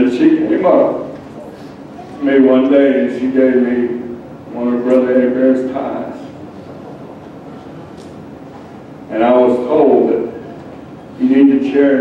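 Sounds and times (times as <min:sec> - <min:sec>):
large hall rumble and hiss: 0:00.0 - 0:12.0.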